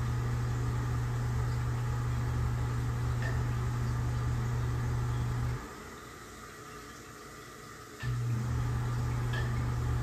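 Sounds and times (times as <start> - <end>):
exhaust fan humming: 0.0 - 6.7, 7.8 - 10.0.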